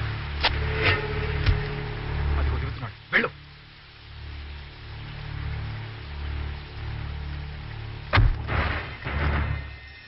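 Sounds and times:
low film score with drone: 0:00.0 - 0:10.0.

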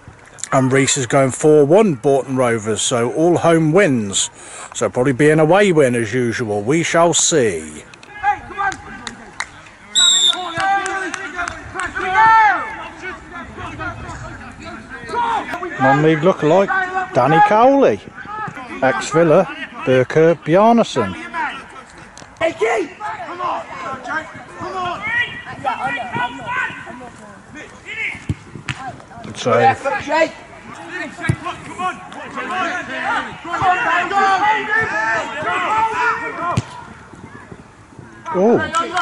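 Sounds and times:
men calling and shouting: 0:00.4 - 0:39.0
referee's whistle blast: 0:09.9 - 0:10.6
loud shout: 0:09.9 - 0:14.0, 0:22.4 - 0:27.0, 0:31.1 - 0:36.6.

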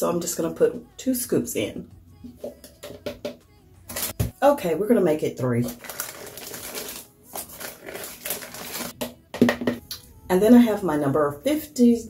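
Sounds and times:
plastic scoop clicking and scraping: 0:05.6 - 0:09.0.

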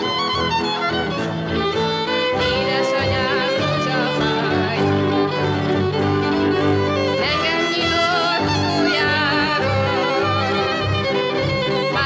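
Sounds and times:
fiddle playing: 0:00.0 - 0:12.0
woman singing: 0:02.4 - 0:04.9, 0:07.2 - 0:10.9.

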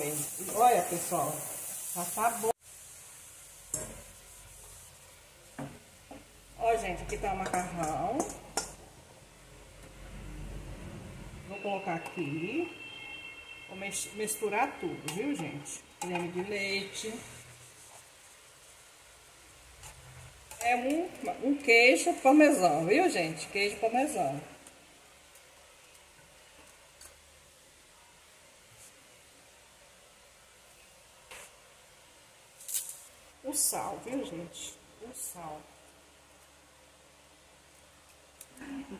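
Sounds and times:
woman speaking: 0:00.0 - 0:01.4, 0:02.0 - 0:02.6, 0:06.6 - 0:08.3, 0:11.5 - 0:12.8, 0:13.7 - 0:17.3, 0:20.6 - 0:24.5, 0:33.5 - 0:35.7
faint room hiss: 0:00.0 - 0:38.9
utensils knocking against pan: 0:07.0 - 0:08.8.

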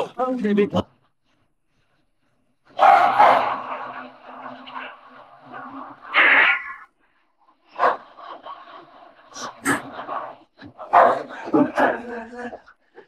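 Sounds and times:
dog barking: 0:02.8 - 0:03.9, 0:07.8 - 0:08.1, 0:10.9 - 0:11.3.

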